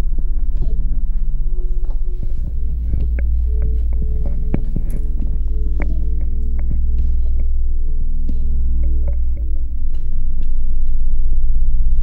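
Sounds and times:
suspense film soundtrack drone: 0:00.0 - 0:12.0.

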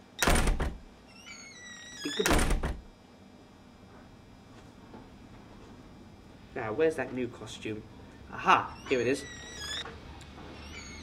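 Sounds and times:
heavy thumps inside wooden wardrobe: 0:00.2 - 0:00.9, 0:02.3 - 0:02.9.

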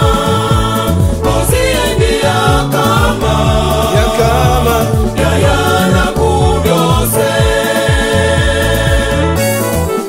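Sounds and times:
gospel choir singing: 0:00.0 - 0:09.6
backing music with bass beat: 0:00.0 - 0:10.0.

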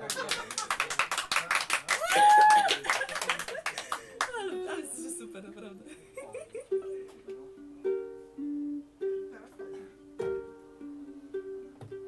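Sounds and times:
audience clapping: 0:00.0 - 0:04.6
person whooping: 0:01.9 - 0:03.2
plucked acoustic string instrument: 0:04.2 - 0:12.0.

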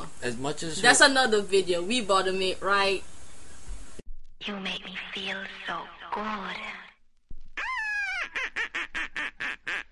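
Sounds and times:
duck quacking: 0:07.6 - 0:09.9.

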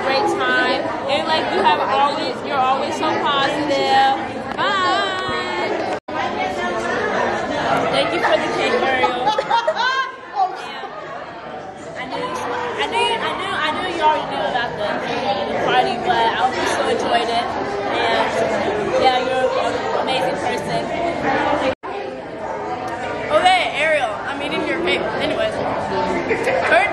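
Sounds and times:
crowd chatter: 0:00.0 - 0:26.9.

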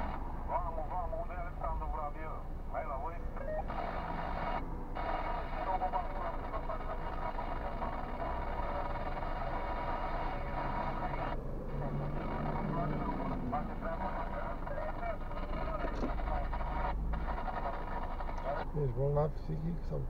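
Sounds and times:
idling car and traffic rumble: 0:00.0 - 0:20.0
radio voice talking: 0:00.0 - 0:20.0.

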